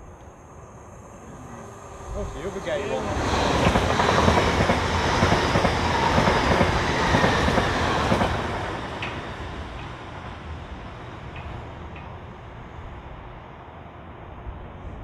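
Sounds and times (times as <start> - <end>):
train passing on rails: 0.0 - 15.0.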